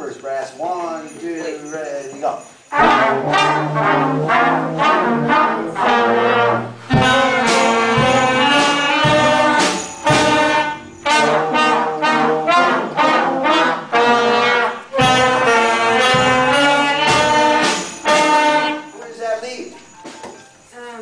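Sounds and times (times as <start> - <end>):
concert band playing: 2.6 - 19.0
low thumps: 6.8 - 11.6.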